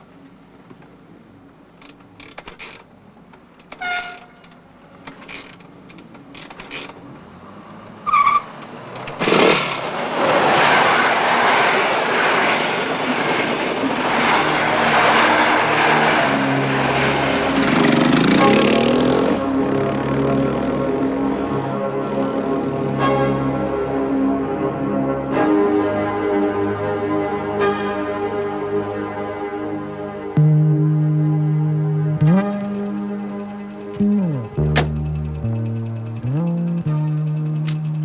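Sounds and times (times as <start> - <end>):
train rushing rumble: 4.2 - 29.0, 32.1 - 38.0.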